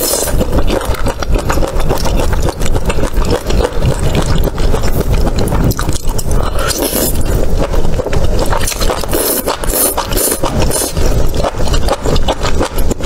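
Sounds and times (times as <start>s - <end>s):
slurp: 0.0s - 13.0s
wet chewing clicks and smacks: 0.0s - 13.0s.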